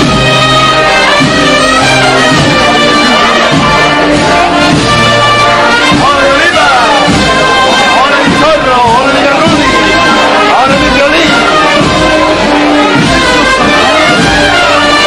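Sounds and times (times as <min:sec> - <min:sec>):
brass band playing a march: 0:00.0 - 0:15.0.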